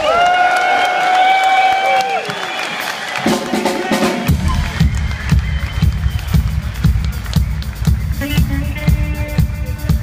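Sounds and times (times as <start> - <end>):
audience applauding and cheering: 0.0 - 10.0.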